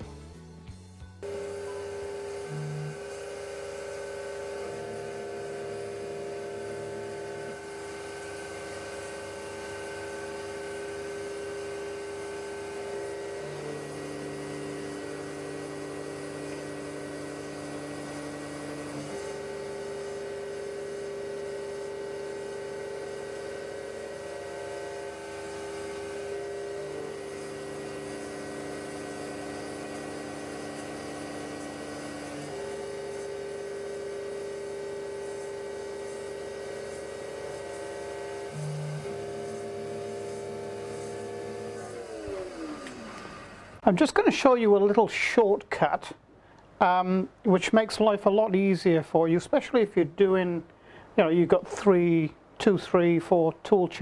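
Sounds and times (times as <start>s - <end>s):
milling machine motor hum: 1.2s - 44.0s.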